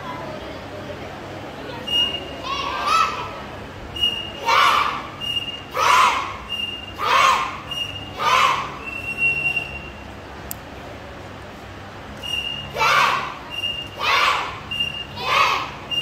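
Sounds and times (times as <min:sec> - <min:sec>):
children shouting in unison: 0:02.4 - 0:03.4, 0:04.4 - 0:08.8, 0:12.7 - 0:16.0.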